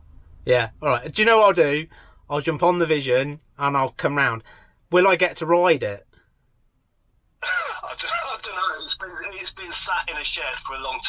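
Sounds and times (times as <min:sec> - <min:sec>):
man talking over phone speaker: 0:07.4 - 0:11.0.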